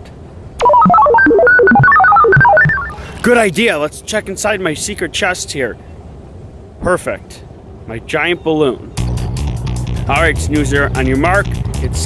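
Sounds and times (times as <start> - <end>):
electronic beeps hopping in pitch: 0.6 - 3.1.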